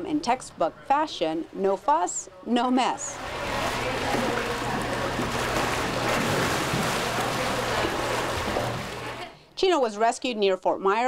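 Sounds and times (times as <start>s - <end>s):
water splashing and churning: 3.2s - 9.3s.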